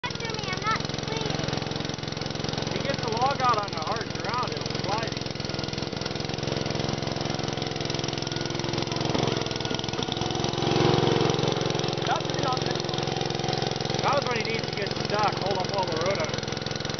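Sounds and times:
small tractor engine running: 0.0 - 16.9.

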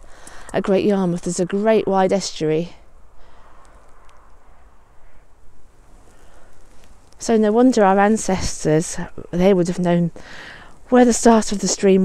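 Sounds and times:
faint rustling: 2.7 - 12.0
low rumble: 2.8 - 7.2
small ticks: 3.5 - 4.4, 6.0 - 7.2.

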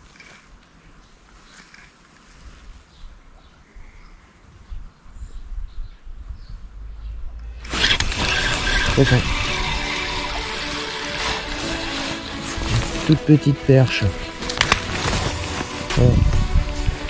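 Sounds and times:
faint low rumble: 2.6 - 7.7
background music: 7.4 - 17.0.

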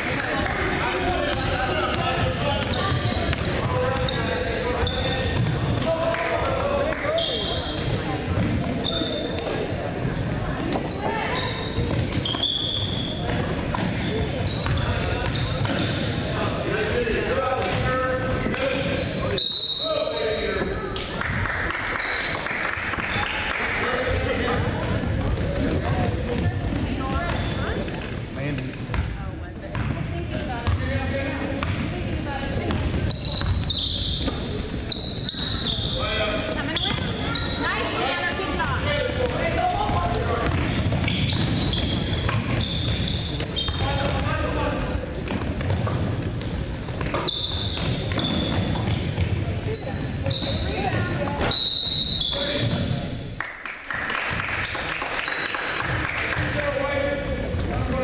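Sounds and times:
sneakers squeaking: 0.0 - 53.3, 55.2 - 58.0
hubbub of voices: 0.0 - 53.4, 54.2 - 58.0.

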